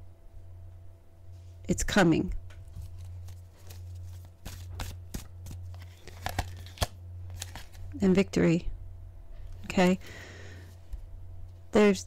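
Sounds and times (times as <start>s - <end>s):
steady low hum: 0.0s - 12.0s
cards clicking and flicking: 2.8s - 7.8s.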